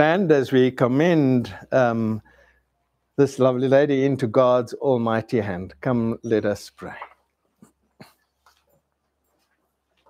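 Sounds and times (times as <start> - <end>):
man's voice: 0.0 - 2.2, 3.2 - 7.2.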